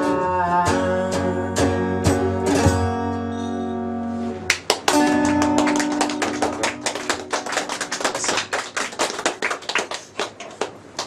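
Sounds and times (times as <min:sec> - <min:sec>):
small audience clapping: 0:04.5 - 0:11.0.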